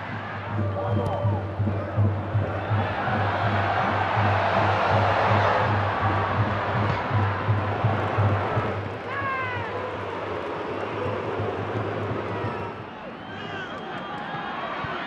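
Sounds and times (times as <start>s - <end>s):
steady low drum beat: 0.0s - 10.4s
stadium crowd noise: 0.0s - 15.0s.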